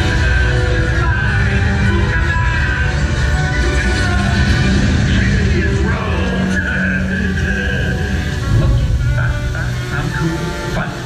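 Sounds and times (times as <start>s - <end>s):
music over outdoor speakers: 0.0s - 11.0s.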